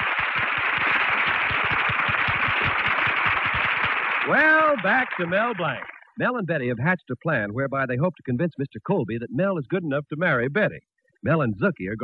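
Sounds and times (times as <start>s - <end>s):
audience applauding: 0.0s - 6.1s.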